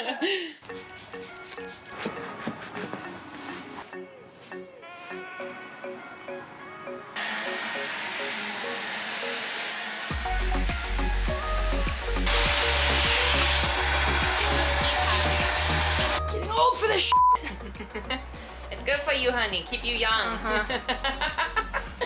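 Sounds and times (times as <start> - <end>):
vacuum cleaner suction: 7.2 - 16.2
background music with bass beat: 10.1 - 22.0.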